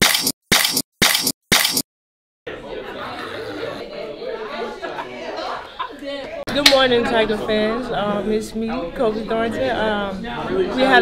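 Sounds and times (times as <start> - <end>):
people chatting and laughing: 2.5 - 11.0.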